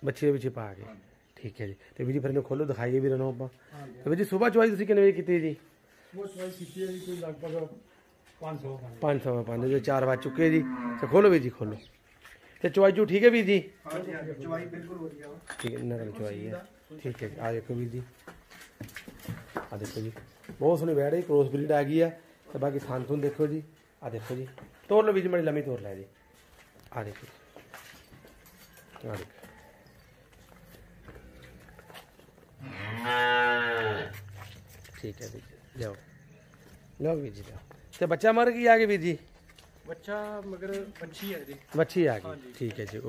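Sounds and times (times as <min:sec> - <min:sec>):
cattle mooing: 0:10.2 - 0:11.4, 0:32.6 - 0:34.1.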